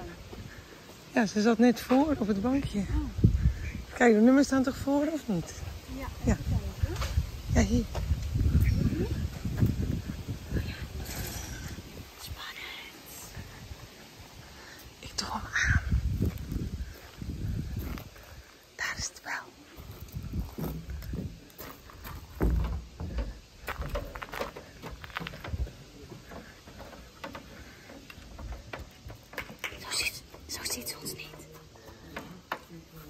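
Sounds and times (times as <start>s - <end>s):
footsteps on wooden boardwalk: 0.0s - 1.1s, 7.0s - 10.5s, 15.9s - 18.6s, 19.7s - 33.0s
wind buffeting microphone: 2.1s - 4.0s, 4.6s - 12.4s, 13.3s - 18.6s, 19.8s - 30.0s.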